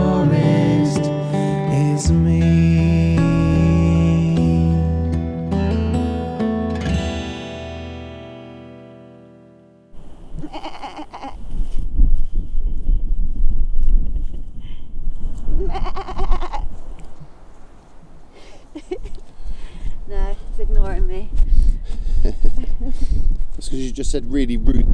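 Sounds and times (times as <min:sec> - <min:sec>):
acoustic guitar song: 0:00.0 - 0:10.0
sheep bleating: 0:10.4 - 0:11.4, 0:15.6 - 0:16.6
wind on microphone: 0:11.3 - 0:17.0, 0:19.9 - 0:24.9.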